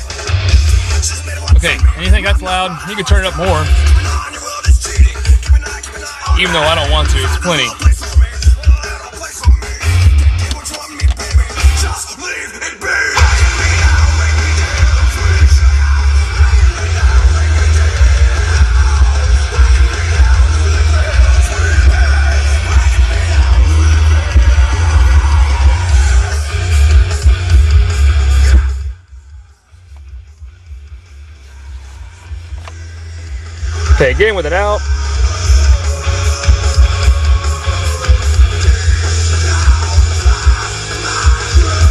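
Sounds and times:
hard rock from car stereo: 0.0 - 41.9.

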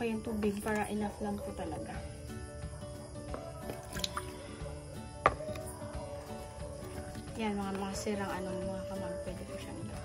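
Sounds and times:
soft background music: 0.0 - 10.0
water drip: 0.3 - 1.1, 3.7 - 4.5.

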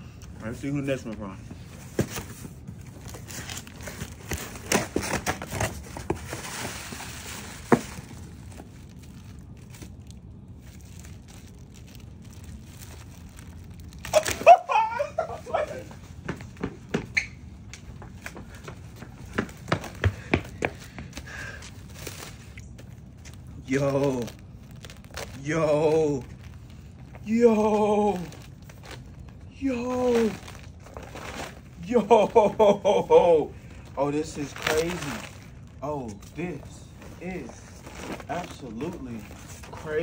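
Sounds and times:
packaging rustling and tearing: 1.8 - 15.8, 21.6 - 32.6, 33.6 - 40.0.

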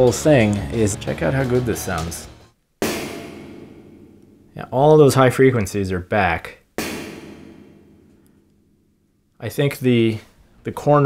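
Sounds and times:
metal rod tapping steel plate: 2.8 - 4.6, 6.8 - 8.3
steel plate ringing: 2.8 - 4.6, 6.8 - 9.1.

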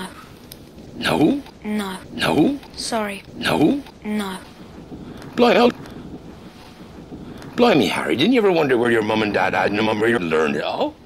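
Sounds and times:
wind ambience: 0.0 - 11.0.

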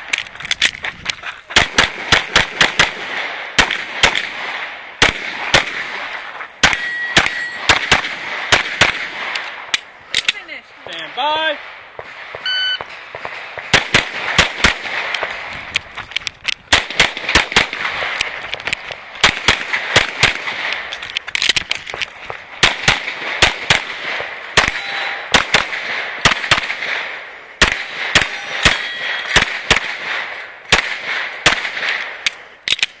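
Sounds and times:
pistol firing rapid shots: 1.5 - 9.7, 11.6 - 15.5, 16.6 - 33.0
bullets ringing on steel plates: 6.0 - 7.9, 24.4 - 25.6, 27.7 - 29.5.

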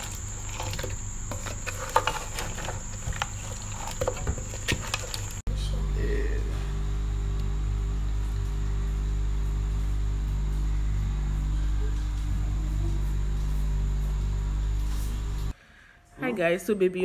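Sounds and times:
steady low machine hum: 0.0 - 15.6.

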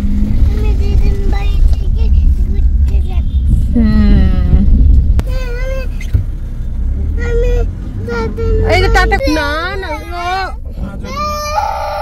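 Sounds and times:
car engine rumble from inside: 0.0 - 12.0.

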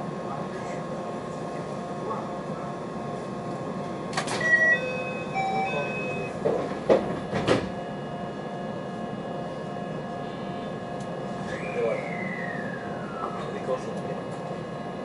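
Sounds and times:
electric train humming: 0.0 - 15.0.

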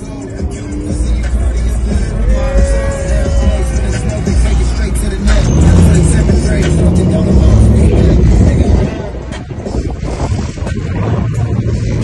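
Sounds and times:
car engine revving: 0.0 - 12.0
music playing: 0.0 - 12.0.

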